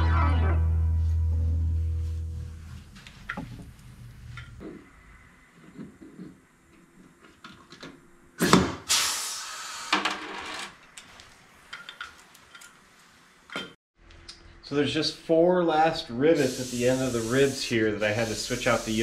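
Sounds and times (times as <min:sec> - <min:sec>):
air hissing: 0:08.4 - 0:10.0, 0:16.4 - 0:19.0.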